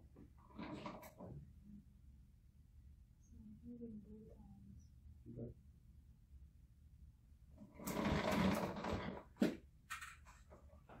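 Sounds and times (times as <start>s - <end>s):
leather chair creaking: 7.8s - 9.3s.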